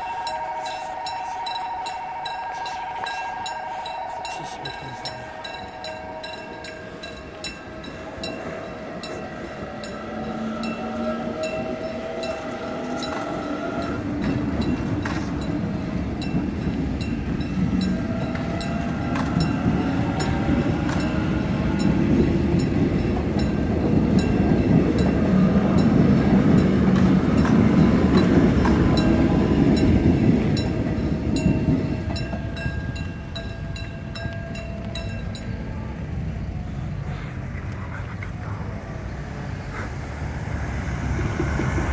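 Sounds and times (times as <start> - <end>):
level crossing bell ringing: 0.0 - 26.8
train wheels rumbling on rails: 0.0 - 41.9.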